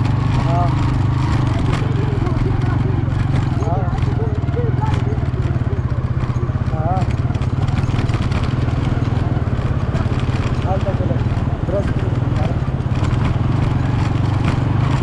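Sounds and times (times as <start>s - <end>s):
engine running with pulsing drone: 0.0s - 15.0s
faint voices: 0.3s - 13.1s.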